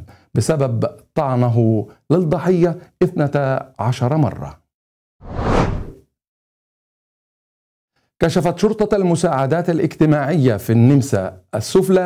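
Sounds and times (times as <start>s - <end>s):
whoosh: 5.2s - 6.0s.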